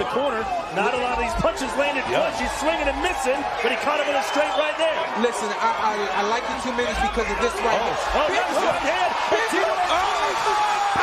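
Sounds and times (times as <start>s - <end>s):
men exclaiming excitedly: 0.3s - 11.0s
long drawn-out shout: 8.3s - 11.0s.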